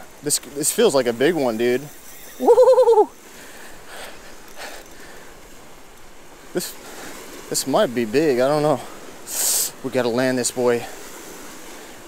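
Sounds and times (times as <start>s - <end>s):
waves washing against rocks: 0.0s - 4.4s.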